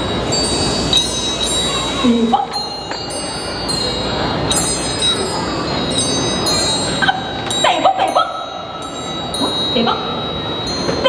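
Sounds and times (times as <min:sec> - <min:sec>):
high metal chimes struck: 0:00.0 - 0:11.0.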